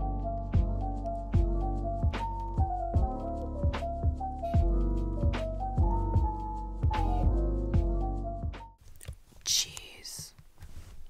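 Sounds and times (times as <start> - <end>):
woman whispering: 9.4 - 10.4.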